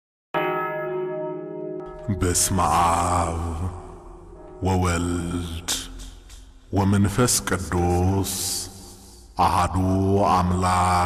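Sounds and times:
church bell ringing: 0:00.4 - 0:05.9.

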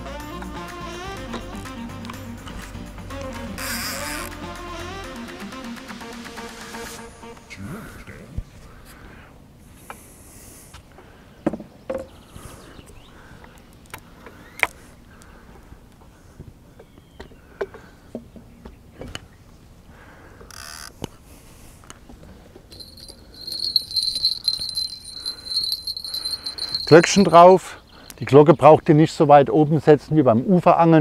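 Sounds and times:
fishing tackle clicking and knocking: 0:22.7 - 0:27.4
small bell jingling: 0:22.7 - 0:27.7.

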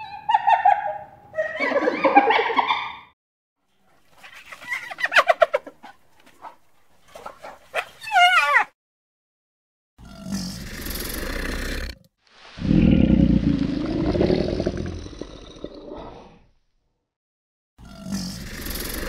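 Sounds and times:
crocodiles growling: 0:10.2 - 0:16.4, 0:18.0 - 0:19.0.

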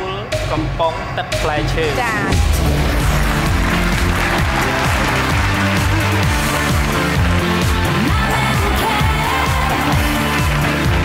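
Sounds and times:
game show music with bass line: 0:00.0 - 0:11.0
studio audience applause: 0:02.6 - 0:11.0.

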